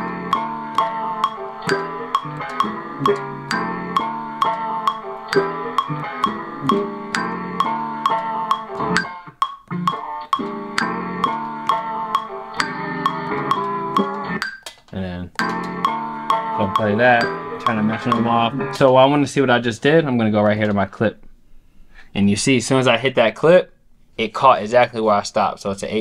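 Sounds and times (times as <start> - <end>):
sampled chords and melodic notes: 0.0 - 14.6, 15.3 - 19.1
metronome click: 0.0 - 14.8, 15.4 - 18.9.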